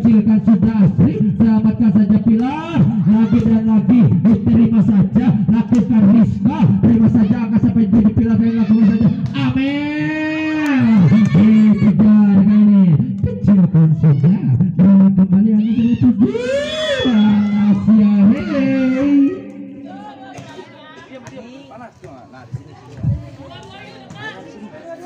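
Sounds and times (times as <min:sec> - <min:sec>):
voices in long rising calls: 0:15.7 - 0:20.4.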